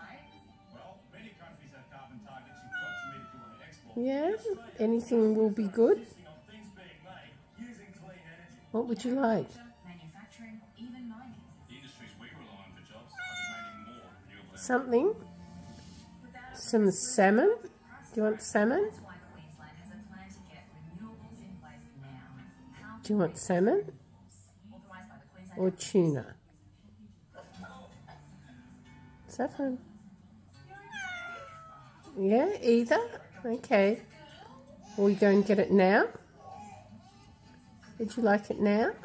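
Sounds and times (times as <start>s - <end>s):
cat meowing: 2.4s - 3.9s, 13.1s - 14.2s, 30.7s - 32.1s.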